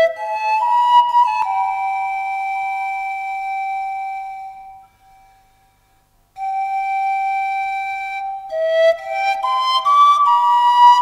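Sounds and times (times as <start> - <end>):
pan flute long notes: 0.0 - 11.0.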